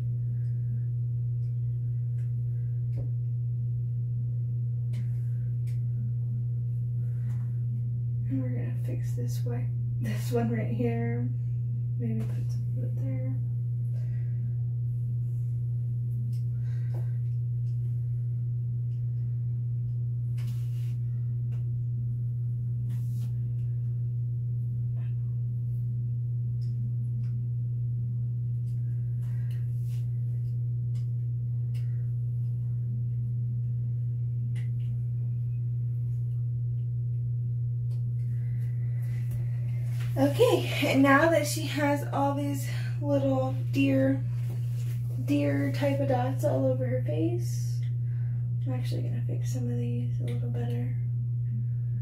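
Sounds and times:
steady low-pitched hum: 0.0 - 52.0.

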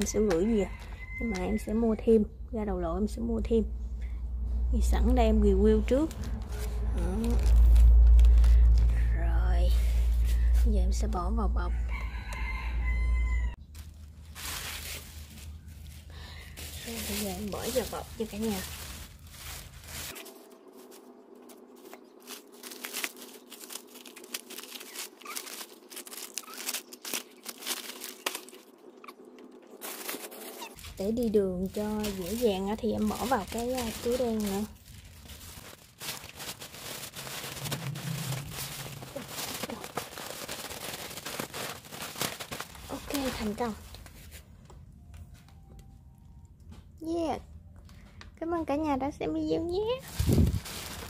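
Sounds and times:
plastic bag crinkling: 6.0 - 9.1, 13.6 - 44.4, 49.9 - 51.0
low steady hum: 12.7 - 51.0
faint rustles and clicks: 13.7 - 28.7, 29.4 - 46.0.

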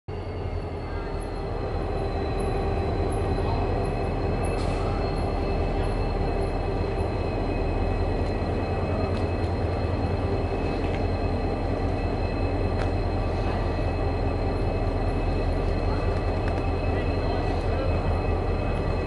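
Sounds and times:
diesel locomotive engine rumble: 0.1 - 19.0
high whine: 0.1 - 19.0.

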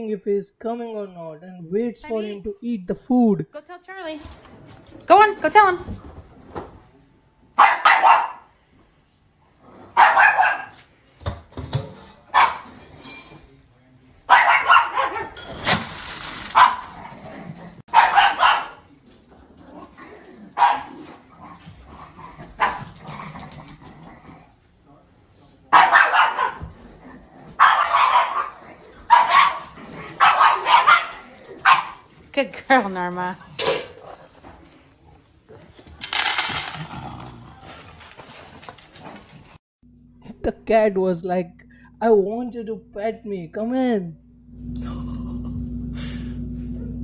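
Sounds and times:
dog barking: 7.6 - 8.5, 9.9 - 10.8, 12.3 - 12.8, 14.3 - 15.4, 16.5 - 17.0, 17.9 - 18.9, 20.6 - 21.0, 22.6 - 22.9, 25.7 - 26.7, 27.6 - 32.1.

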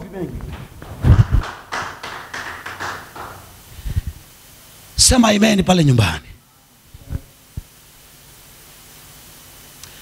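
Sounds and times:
microphone handling taps and rustling: 0.3 - 1.4.

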